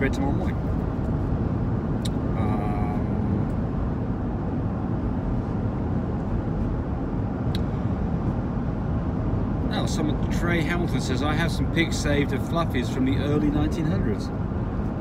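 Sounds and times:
road and engine rumble inside car: 0:00.0 - 0:15.0.

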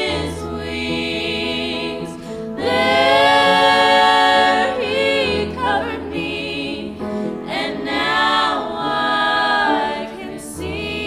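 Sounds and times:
women singing in harmony: 0:00.0 - 0:11.0.

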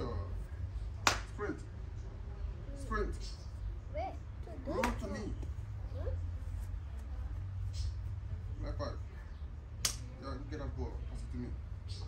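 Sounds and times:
sharp snap: 0:09.8 - 0:10.1.

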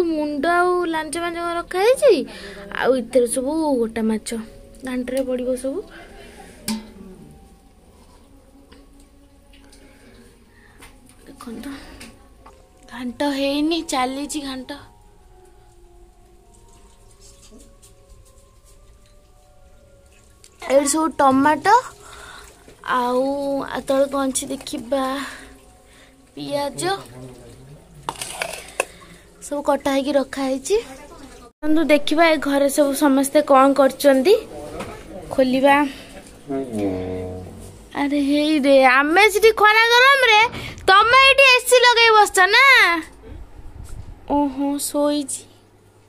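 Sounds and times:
woman's voice: 0:00.0 - 0:06.4, 0:11.2 - 0:14.9, 0:26.4 - 0:27.1, 0:29.5 - 0:34.5, 0:35.2 - 0:36.1, 0:37.9 - 0:43.2, 0:44.3 - 0:45.6.

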